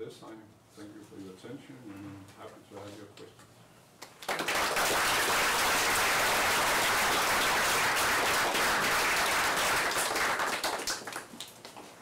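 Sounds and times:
audience applauding: 4.1 - 11.7.

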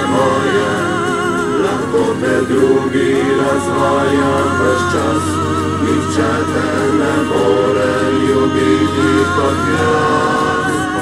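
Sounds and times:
voices singing in harmony: 0.0 - 11.0.

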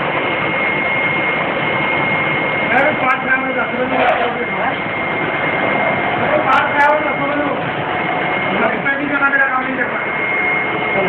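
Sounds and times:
high machine whine: 0.0 - 11.0
screen-printing machine running: 0.0 - 11.0
voices talking: 2.7 - 11.0.

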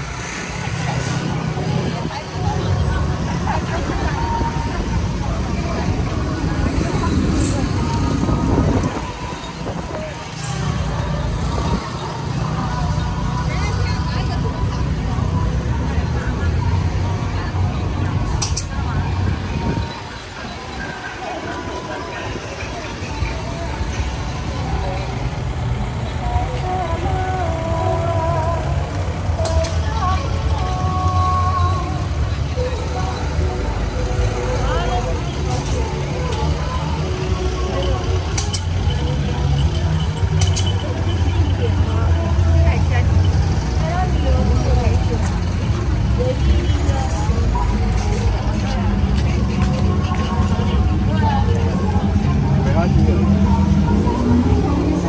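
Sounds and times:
faint music: 0.0 - 55.0
people talking: 0.0 - 55.0
vehicles rumbling: 0.0 - 55.0.

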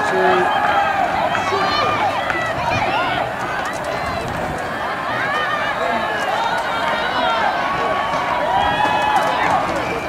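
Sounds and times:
open-air background noise: 0.0 - 10.0
voices shouting and calling: 0.0 - 10.0.

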